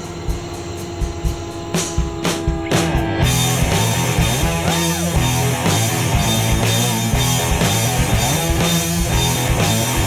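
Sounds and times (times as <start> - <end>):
rock band playing: 1.0 - 10.0.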